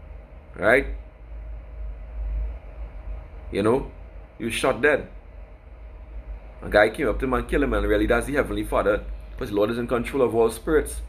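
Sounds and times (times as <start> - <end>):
faint steady hum: 0.0 - 11.0
low rumbling noise: 0.0 - 11.0.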